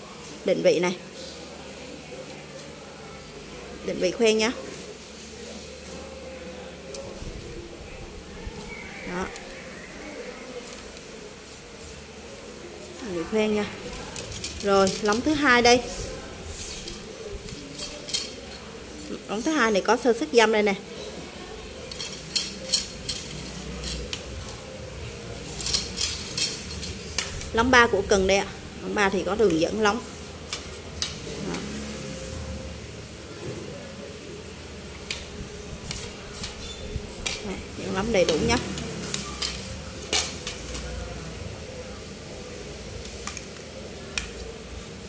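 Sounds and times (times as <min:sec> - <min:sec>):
fishing rod handling rubbing: 0:13.9 - 0:20.1, 0:21.9 - 0:24.4, 0:25.4 - 0:28.0, 0:35.0 - 0:41.0.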